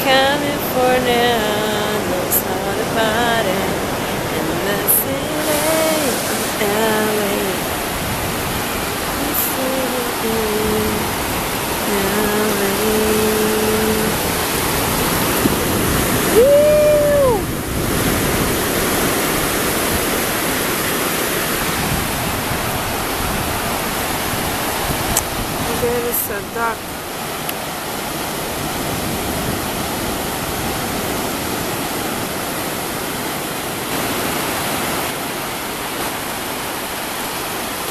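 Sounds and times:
woman humming: 0:00.0 - 0:07.6, 0:09.2 - 0:11.2, 0:11.8 - 0:14.4, 0:15.4 - 0:17.5
woman singing long note: 0:00.0 - 0:07.9, 0:09.1 - 0:17.5
surf breaking on sand: 0:00.0 - 0:37.9
wind on microphone: 0:00.0 - 0:37.9.

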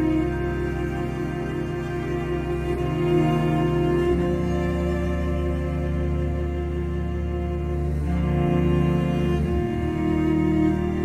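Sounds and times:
orchestral music with held chords: 0:00.0 - 0:11.0.

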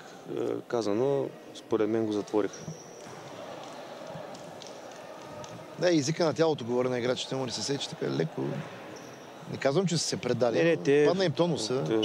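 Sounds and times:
sports hall murmur: 0:00.0 - 0:12.0
shoe squeaks: 0:02.5 - 0:03.2, 0:09.0 - 0:09.3.

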